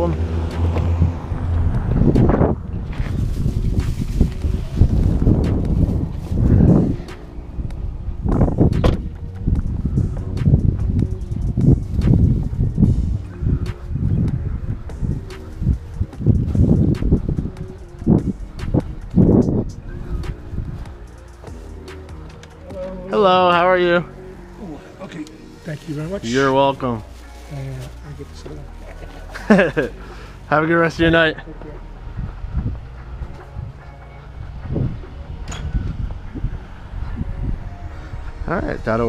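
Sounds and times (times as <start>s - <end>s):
wind on microphone: 0.1s - 21.6s, 32.0s - 39.0s
car door handled: 8.7s - 9.2s
footsteps on grass and paving: 27.0s - 29.7s.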